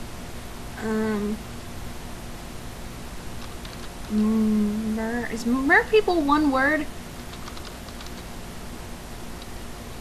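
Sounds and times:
steady background hiss: 0.0s - 10.0s
keyboard typing: 3.4s - 4.2s, 7.2s - 8.3s.

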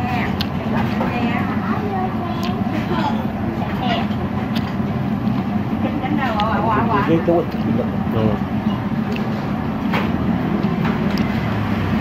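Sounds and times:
background chatter: 0.0s - 9.7s
street traffic hum: 0.0s - 12.0s.

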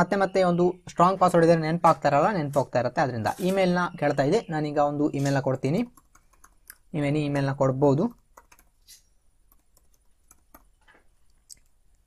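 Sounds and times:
computer keyboard typing: 5.2s - 7.1s, 7.9s - 10.9s.

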